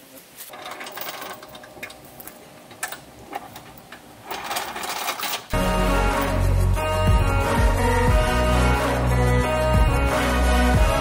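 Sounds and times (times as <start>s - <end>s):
music with heavy bass: 5.6s - 11.0s.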